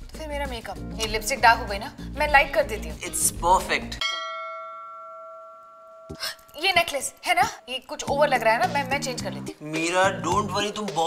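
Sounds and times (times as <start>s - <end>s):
bell-like chime: 4.0s - 6.6s.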